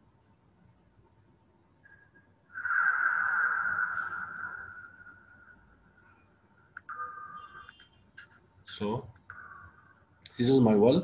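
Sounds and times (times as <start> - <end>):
clicks: 6.7 - 7.0.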